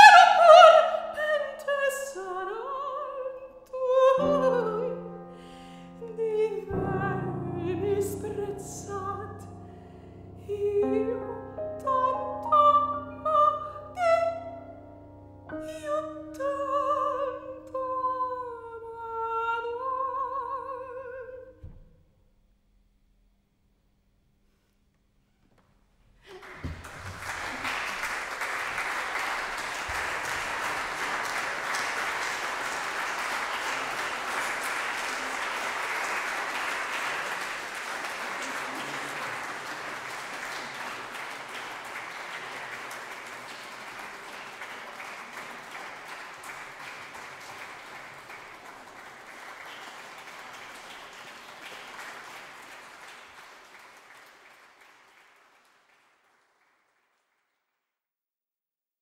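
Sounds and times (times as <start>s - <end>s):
audience applauding: 0.0s - 1.4s, 26.2s - 57.6s.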